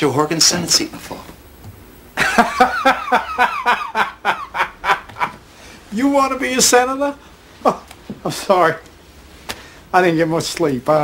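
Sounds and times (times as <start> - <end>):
man laughing hard: 2.2 - 5.4.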